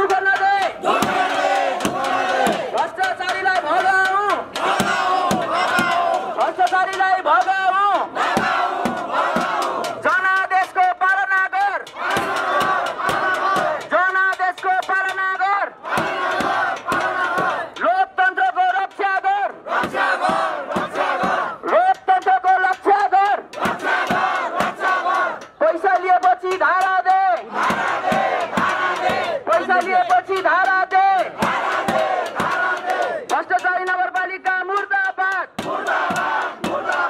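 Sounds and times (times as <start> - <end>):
crowd shouting slogans: 0.0 - 10.5, 11.7 - 14.2, 15.0 - 18.5, 19.1 - 34.4, 35.5 - 37.0
man on a microphone: 25.6 - 27.4, 29.4 - 31.3.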